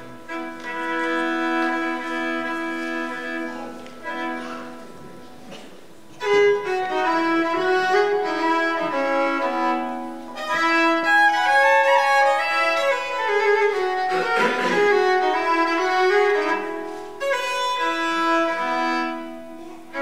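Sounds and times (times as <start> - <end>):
fiddle playing folk tune: 0.0 - 20.0.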